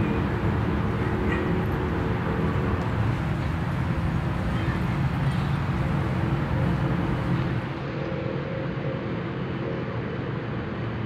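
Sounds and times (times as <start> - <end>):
low rumbling noise: 0.0 - 11.0.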